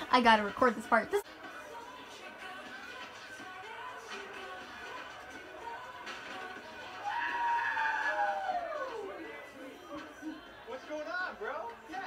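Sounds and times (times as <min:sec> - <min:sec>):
long high scream: 0:07.0 - 0:08.9.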